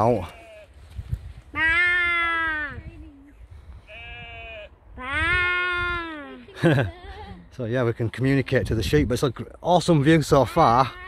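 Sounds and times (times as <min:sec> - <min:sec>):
distant sheep bleat: 0:00.0 - 0:00.8, 0:03.9 - 0:04.8
person imitating sheep baa: 0:01.6 - 0:02.8, 0:05.0 - 0:06.4.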